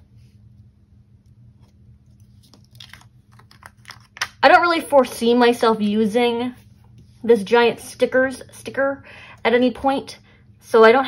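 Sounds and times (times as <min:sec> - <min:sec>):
low steady hum: 0:00.0 - 0:11.0
paper sticker sheet crinkling: 0:01.6 - 0:04.4.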